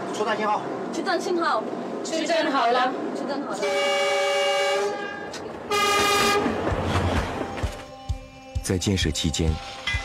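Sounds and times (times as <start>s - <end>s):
locomotive horn blasts: 3.6s - 8.8s.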